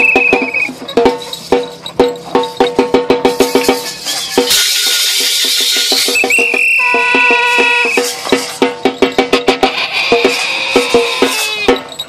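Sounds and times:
high whistle-like tone: 0.0 - 0.8, 4.6 - 8.2
drum played fast: 0.0 - 12.0.

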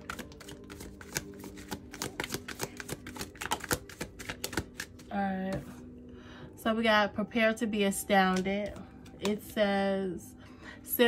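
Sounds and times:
cards being shuffled by hand: 0.0 - 5.8.

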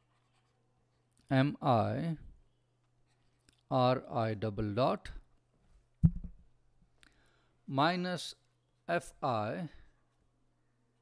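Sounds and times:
man speaking: 1.3 - 2.3, 3.7 - 5.3, 7.7 - 9.8.

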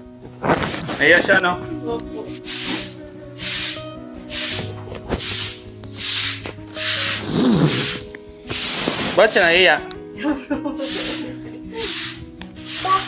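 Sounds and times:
broom sweeping a floor: 2.3 - 9.7, 10.6 - 13.0.

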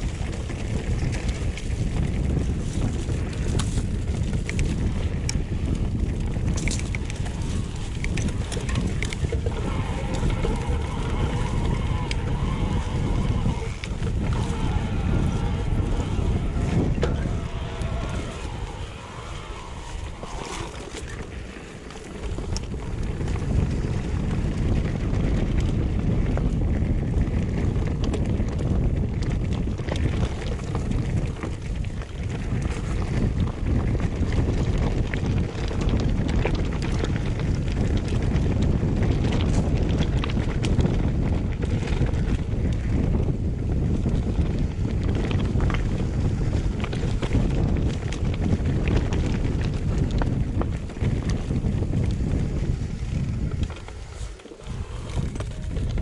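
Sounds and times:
bike rumbling and rattling on dirt: 0.0 - 56.0
wind buffeting microphone: 0.0 - 56.0.

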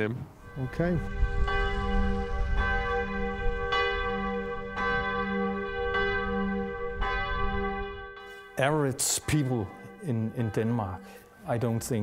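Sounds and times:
church bell ringing: 0.3 - 12.0
low rumble: 0.5 - 8.2.

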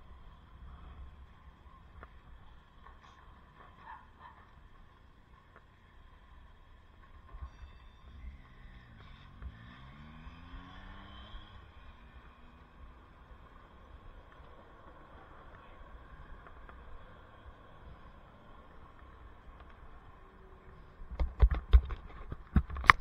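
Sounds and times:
city street traffic: 0.0 - 23.0
vehicle accelerating: 8.0 - 21.0.

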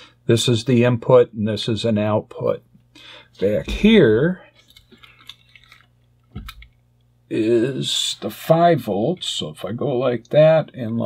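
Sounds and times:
test probes clicking and rustling: 4.6 - 6.8.

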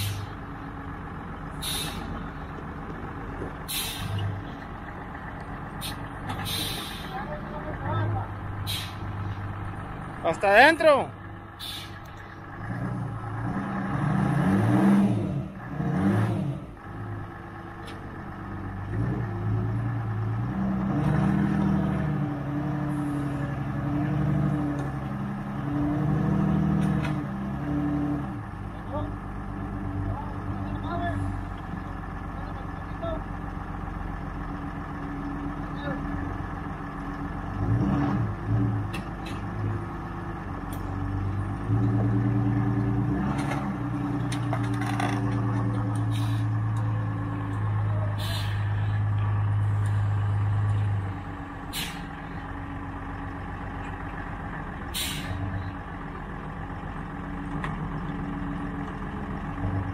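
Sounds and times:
forklift engine running under load: 0.0 - 59.9.

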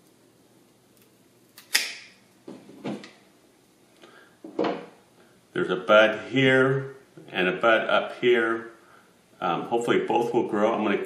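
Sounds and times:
pruning shears snipping wood: 1.6 - 2.1.

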